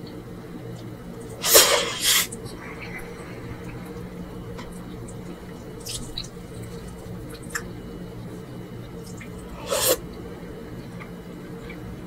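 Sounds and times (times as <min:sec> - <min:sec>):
wet mouth noises: 0:01.3 - 0:07.7, 0:09.0 - 0:10.0.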